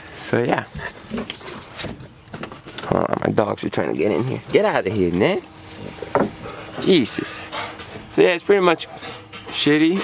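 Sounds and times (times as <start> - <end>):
dogs panting: 5.7 - 10.0.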